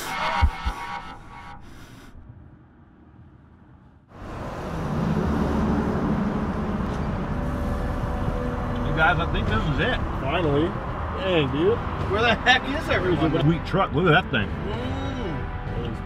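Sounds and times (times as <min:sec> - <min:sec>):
low thumps: 0:00.0 - 0:01.6
vehicle rumble: 0:00.0 - 0:16.0
music: 0:10.1 - 0:16.0.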